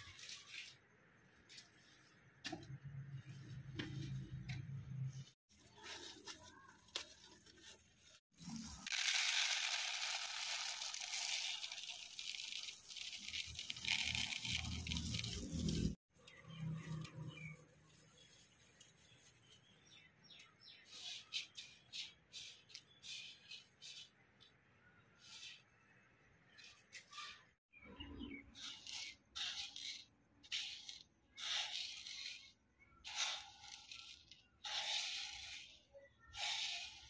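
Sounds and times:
grain pouring into plastic bowl: 8.4 - 16.0, 28.6 - 35.8
hand stirring grain clicks: 8.4 - 16.4, 28.6 - 35.8.

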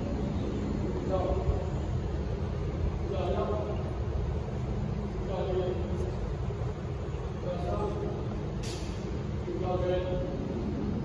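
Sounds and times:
distant train rumble: 0.0 - 11.0.

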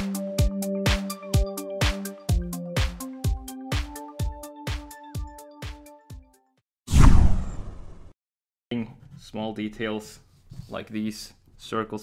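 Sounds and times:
background music beat: 0.0 - 6.6
whoosh and hit sound effect: 6.9 - 8.1.

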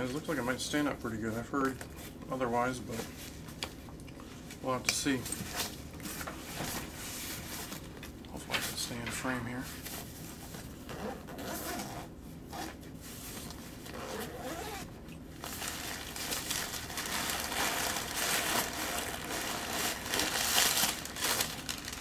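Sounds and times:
backpack zipper opening: 10.9 - 12.8, 13.8 - 14.9
fabric and paper rustling: 12.6 - 22.0.

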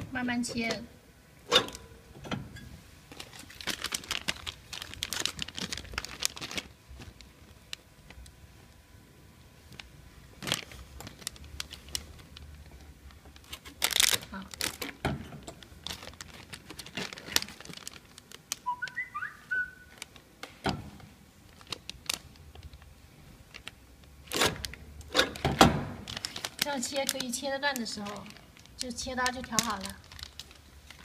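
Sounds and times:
foil film crinkling: 3.1 - 8.3, 9.6 - 15.0, 15.6 - 20.4, 21.5 - 31.0.

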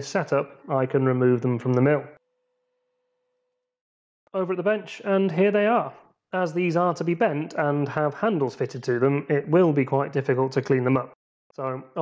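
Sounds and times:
man narrating: 0.0 - 2.2, 4.4 - 12.0.

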